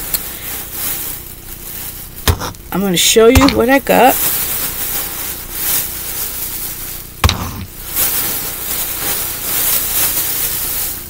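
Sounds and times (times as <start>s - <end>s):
shopping bag rustling: 0.0s - 11.0s.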